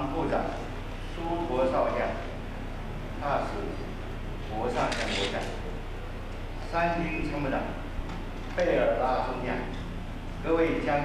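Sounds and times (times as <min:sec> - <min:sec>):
man reading aloud: 0:00.0 - 0:02.4, 0:03.1 - 0:05.8, 0:06.6 - 0:09.8, 0:10.4 - 0:11.0
steady low hum: 0:00.0 - 0:11.0.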